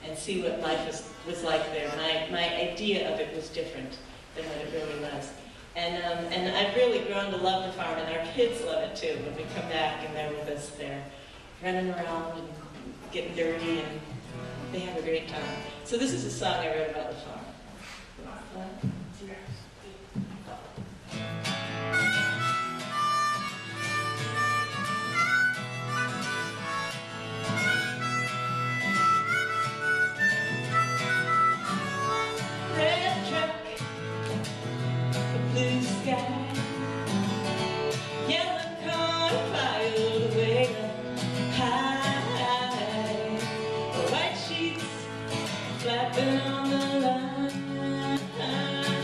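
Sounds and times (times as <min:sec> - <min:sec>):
acoustic guitar strumming: 0:13.2 - 0:17.4, 0:20.9 - 0:49.0
harmonica melody: 0:21.5 - 0:35.5, 0:36.2 - 0:38.3.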